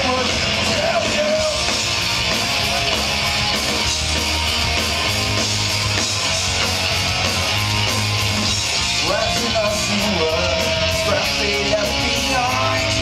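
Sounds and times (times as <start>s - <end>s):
punk rock band playing: 0.0s - 13.0s.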